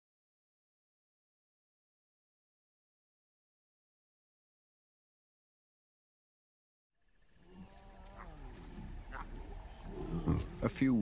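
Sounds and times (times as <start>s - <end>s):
lion moaning calls: 7.4s - 11.0s.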